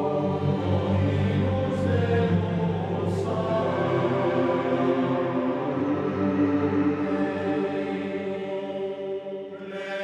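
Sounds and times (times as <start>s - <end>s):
choir chanting: 0.0s - 10.0s.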